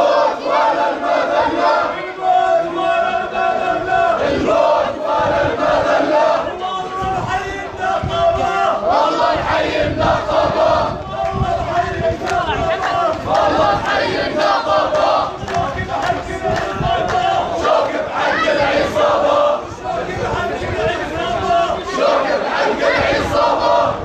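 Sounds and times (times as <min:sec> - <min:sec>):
crowd of men chanting: 0:00.0 - 0:24.0.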